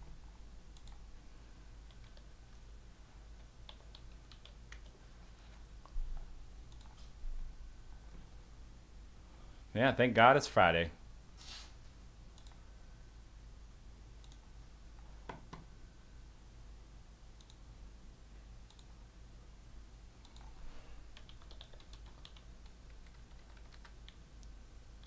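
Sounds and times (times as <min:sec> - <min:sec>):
steady low hum: 0:00.0 - 0:25.0
computer keyboard clicks: 0:03.4 - 0:05.0, 0:20.2 - 0:20.5, 0:21.2 - 0:24.2.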